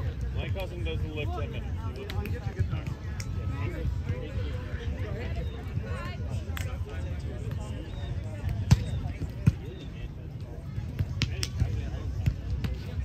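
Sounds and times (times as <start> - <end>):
faint voices: 0.0 - 13.0.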